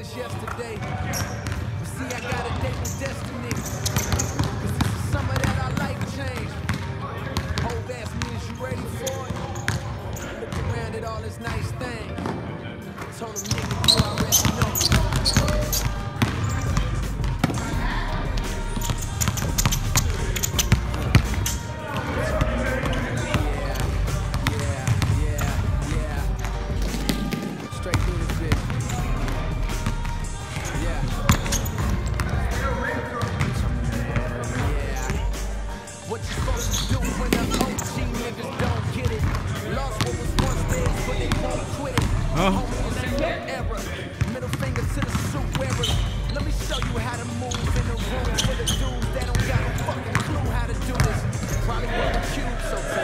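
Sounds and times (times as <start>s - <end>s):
basketballs bouncing on court: 0.0s - 12.4s, 13.0s - 35.4s, 36.2s - 52.4s
rap music with vocals: 0.0s - 53.0s
sneakers squeaking: 0.0s - 53.0s.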